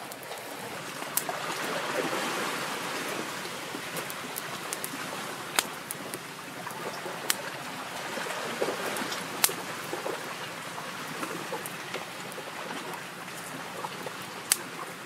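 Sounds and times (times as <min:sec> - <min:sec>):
fire crackling pops: 0:03.4 - 0:07.5, 0:08.9 - 0:09.7.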